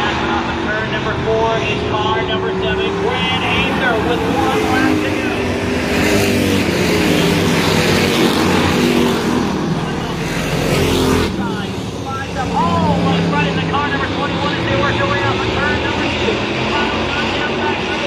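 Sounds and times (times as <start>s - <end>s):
race car engines at speed: 0.0s - 18.0s.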